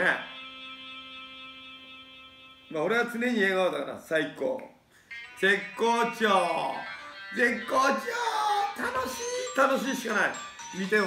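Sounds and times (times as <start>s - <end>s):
steady hum of held tones: 0.0s - 3.6s.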